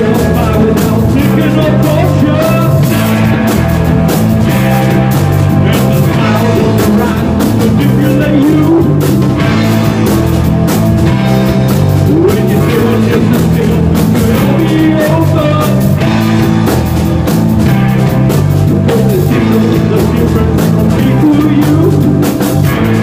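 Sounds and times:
loud post-punk rock band: 0.0 - 23.0.

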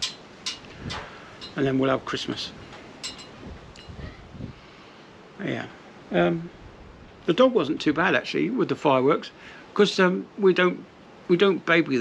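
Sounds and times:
wind on microphone: 0.6 - 1.2, 2.5 - 4.7.

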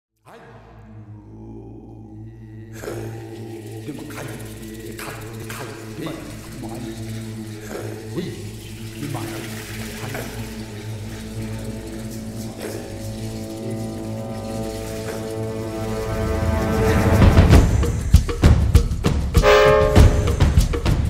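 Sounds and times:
sustained held notes: 3.1 - 18.6, 19.4 - 20.8
percussion hits: 8.4 - 21.0.

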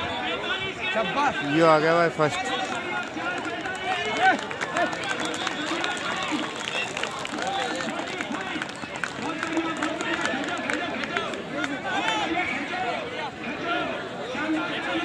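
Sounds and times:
crowd talking and calling out: 0.0 - 15.0.

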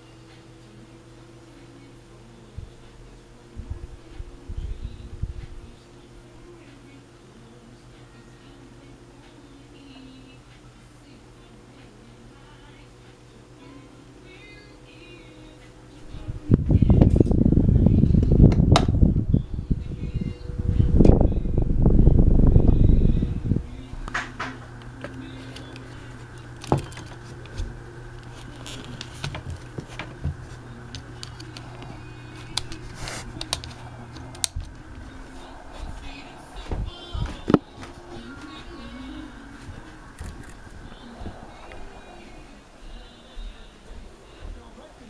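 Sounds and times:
fan air buffeting microphone: 0.0 - 45.0
handling noise: 24.1 - 42.5
footsteps: 31.6 - 44.8.

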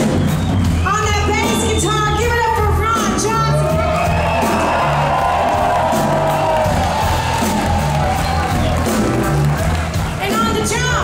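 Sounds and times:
live blues-rock band playing: 0.0 - 11.0
crowd cheering and whooping: 3.4 - 10.1.

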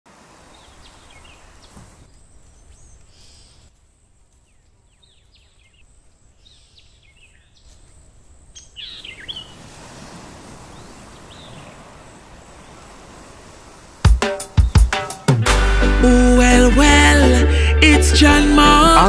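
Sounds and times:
steady background hiss: 0.1 - 15.3
birds chirping: 0.4 - 3.7, 4.4 - 9.7, 10.6 - 13.0, 14.4 - 15.3.

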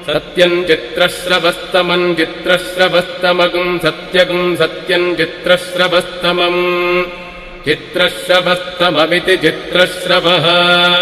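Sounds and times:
person chanting mantra: 0.0 - 11.0.

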